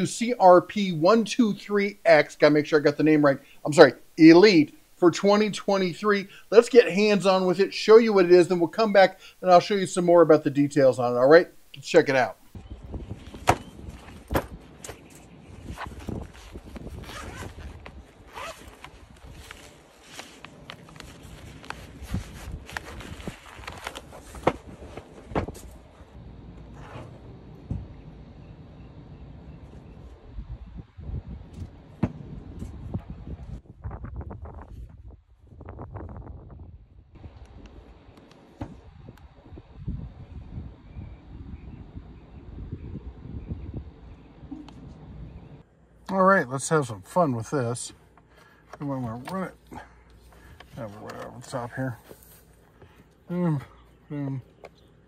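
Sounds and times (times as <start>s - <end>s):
rustling: 13.1s - 27.2s, 50.0s - 53.3s
zipper being unzipped: 15.7s - 19.6s, 26.7s - 27.2s.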